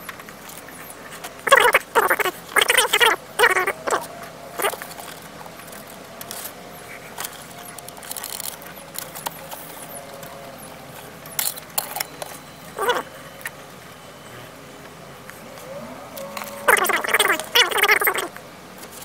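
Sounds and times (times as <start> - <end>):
animal calling: 0.7 - 18.4.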